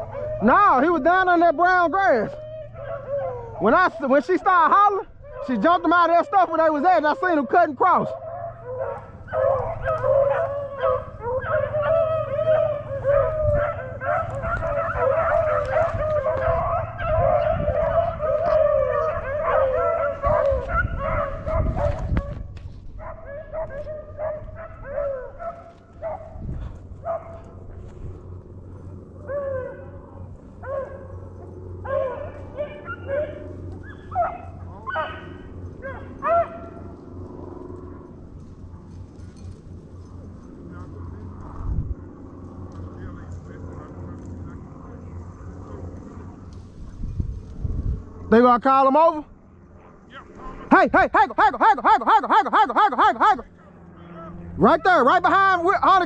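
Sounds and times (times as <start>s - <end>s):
dogs baying and yelping: 0.0s - 42.9s.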